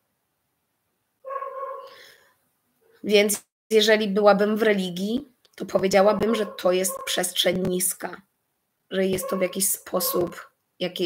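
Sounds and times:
animal whining: 6.2s - 7.3s, 9.1s - 10.5s.

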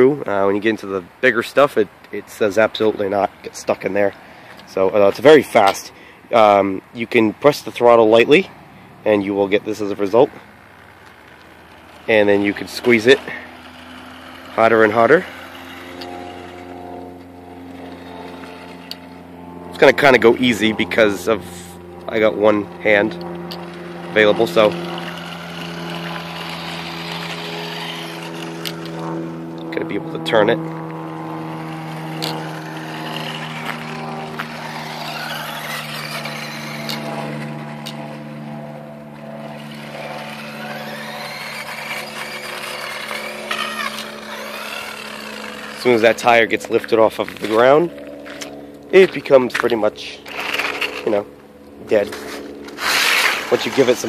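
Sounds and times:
low hum: 8.5s - 54.0s
toy car motor whining: 9.3s - 51.4s, 52.0s - 54.0s.

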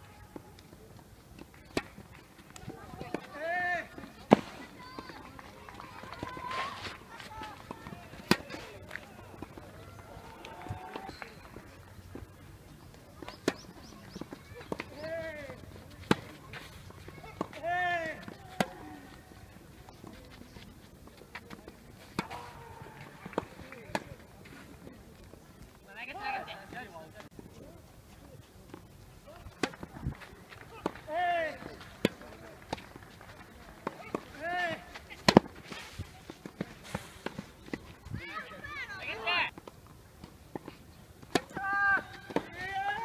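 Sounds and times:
tennis ball struck by rackets: 7.6s - 9.7s, 13.2s - 16.4s, 17.0s - 18.9s, 33.8s - 37.9s, 40.5s - 42.6s.

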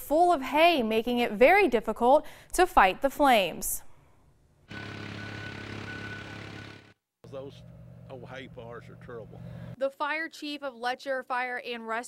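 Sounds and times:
steady engine hum: 4.7s - 9.8s.

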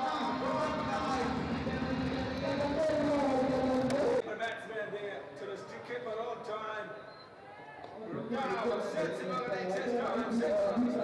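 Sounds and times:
people talking: 0.0s - 6.8s, 8.0s - 11.0s.

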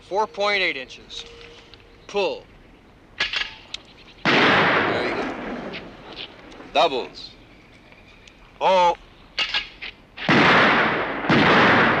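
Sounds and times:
shotgun shots: 4.2s - 6.0s, 9.4s - 12.0s.

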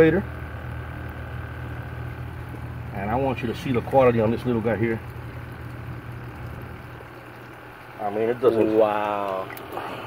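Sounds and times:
low hum: 0.0s - 8.0s
water sloshing in bucket: 2.4s - 10.0s.

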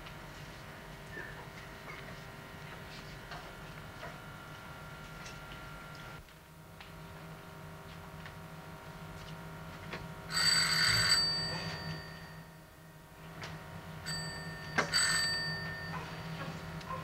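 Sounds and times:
electric doorbell ringing: 10.3s - 12.7s, 14.0s - 16.6s.

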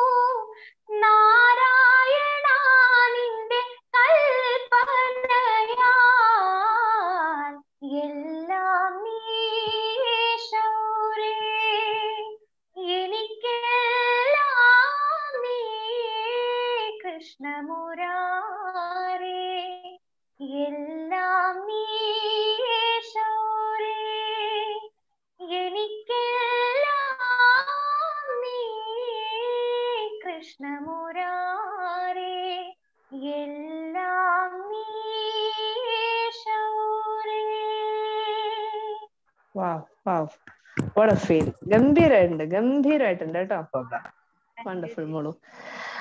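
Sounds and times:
woman singing unaccompanied: 0.0s - 40.3s.

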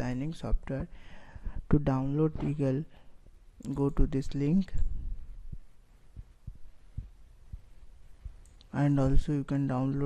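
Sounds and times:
low electrical hum: 0.0s - 10.0s
faint low thumps: 4.7s - 8.5s.

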